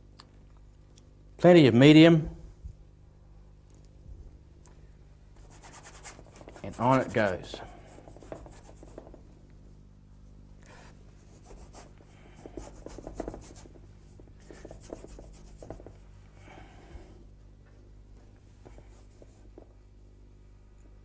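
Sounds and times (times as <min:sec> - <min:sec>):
paintbrush scrubbing on board: 0:05.4 - 0:09.2, 0:10.8 - 0:15.9.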